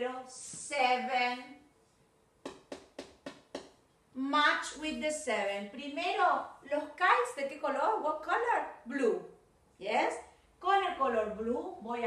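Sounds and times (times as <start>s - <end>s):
marker tapping on whiteboard: 2.4s - 3.8s.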